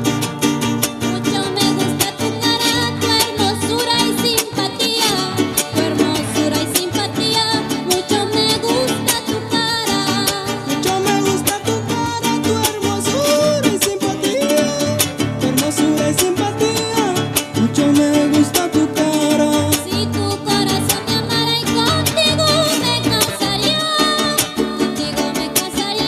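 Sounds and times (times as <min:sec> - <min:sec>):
strummed guitars: 0:00.0 - 0:26.0.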